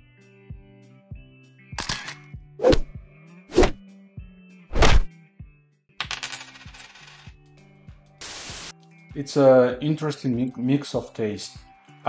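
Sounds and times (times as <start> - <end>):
soft background music: 0.0 - 12.0
metallic coin jingle effect: 1.8 - 2.2, 6.0 - 7.4.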